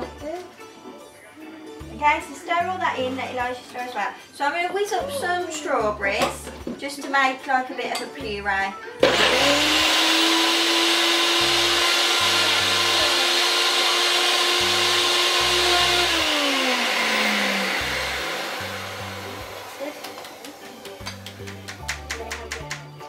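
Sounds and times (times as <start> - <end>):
blender motor running: 9.0 - 21.0.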